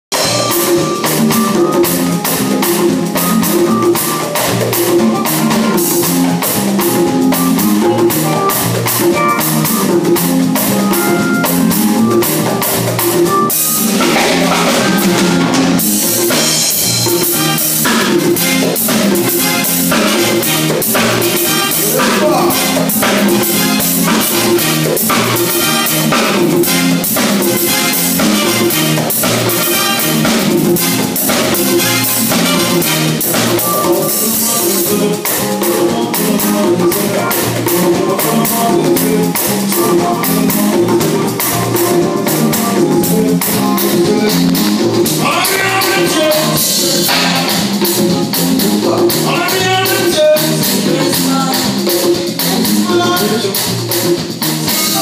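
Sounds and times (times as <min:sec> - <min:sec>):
drum kit: 0:00.1 - 0:55.0
hand drums: 0:00.1 - 0:55.0
keyboard and bass notes: 0:00.1 - 0:55.0.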